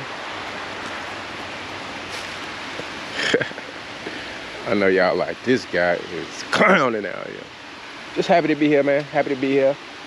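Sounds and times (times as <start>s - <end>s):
river water rushing over rocks: 0.0s - 4.9s.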